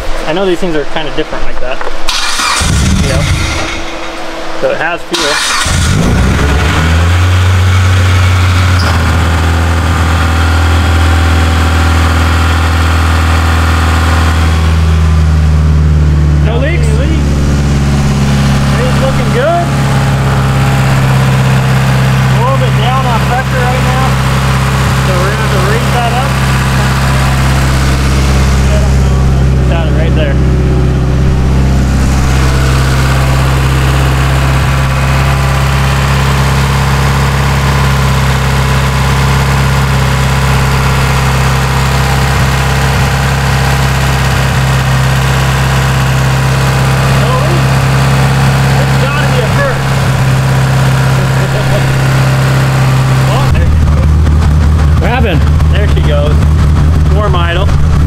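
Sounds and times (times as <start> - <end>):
car engine idling: 2.0 - 58.0.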